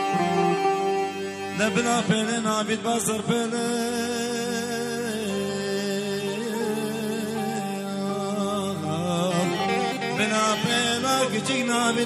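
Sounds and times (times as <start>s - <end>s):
steady accompaniment: 0.0s - 4.5s
man singing folk song: 1.5s - 12.0s.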